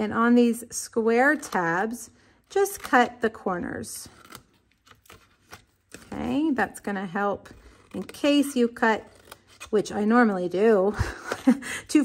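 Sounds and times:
scissors snipping cardstock: 0:02.5 - 0:03.4.

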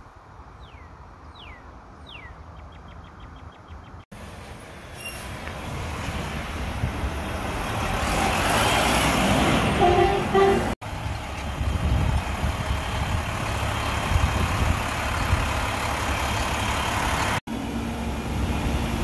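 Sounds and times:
diesel truck engine rumbling: 0:04.2 - 0:19.0
short two-part squeal: 0:04.9 - 0:05.4.

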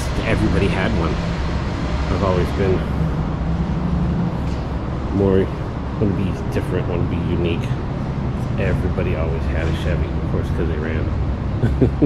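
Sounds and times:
ventilation system hum: 0:00.0 - 0:12.0.

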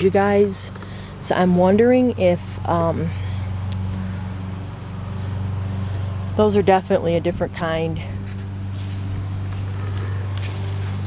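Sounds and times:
low engine hum: 0:00.0 - 0:11.0.

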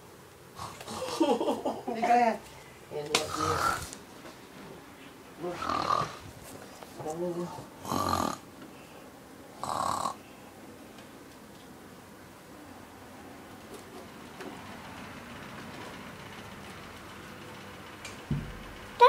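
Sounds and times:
woman snoring loudly: 0:03.3 - 0:03.9, 0:05.5 - 0:06.2, 0:07.8 - 0:08.4, 0:09.6 - 0:10.2
dull thump: 0:18.3 - 0:18.7.

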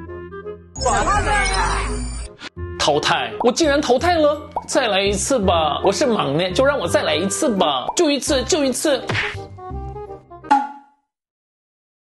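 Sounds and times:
light background music: 0:00.0 - 0:10.8
sharp comedy whack: 0:09.1 - 0:09.5, 0:10.5 - 0:11.0.

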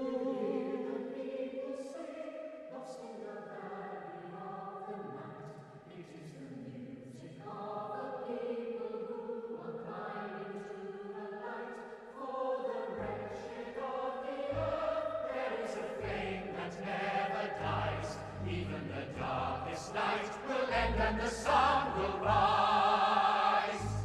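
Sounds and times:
choir singing with orchestra: 0:00.0 - 0:24.0.

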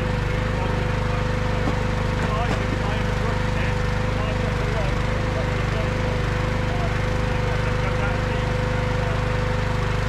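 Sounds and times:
engine idling: 0:00.0 - 0:10.0
steady whine: 0:00.0 - 0:10.0.

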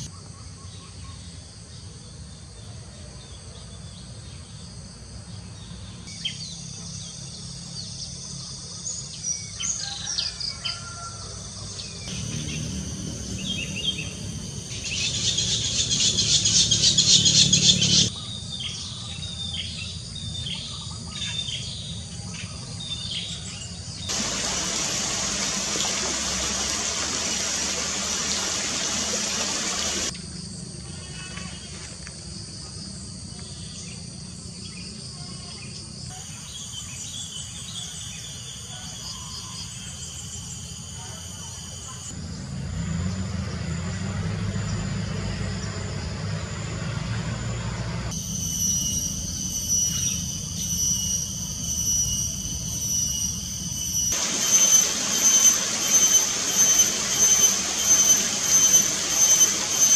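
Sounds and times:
birds chirping: 0:11.7 - 0:30.1
stream running over rocks: 0:24.1 - 0:30.1, 0:54.1 - 0:59.9
pulsing insect buzz: 0:48.2 - 0:59.9.

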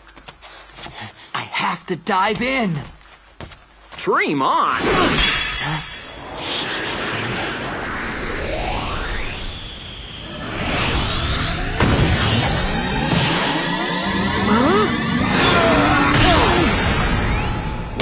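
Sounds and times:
rising whoosh effects: 0:06.0 - 0:14.2.

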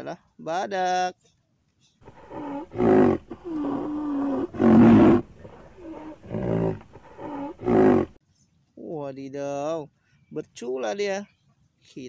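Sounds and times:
rhinoceros bellowing: 0:02.0 - 0:08.2.

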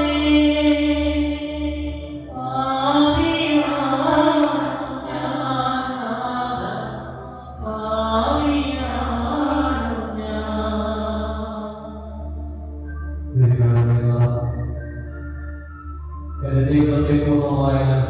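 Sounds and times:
low instrumental drone: 0:12.3 - 0:16.2.

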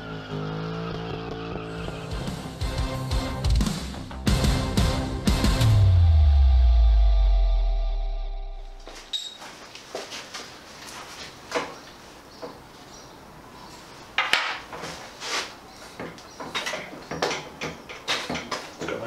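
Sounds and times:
shock absorbers clinking on metal frame: 0:08.9 - 0:09.6, 0:15.8 - 0:19.0.

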